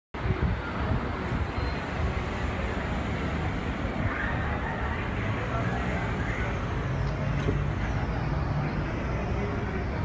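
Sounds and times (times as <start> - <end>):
cars passing: 0.2 - 10.0
road traffic rumble: 0.2 - 10.0.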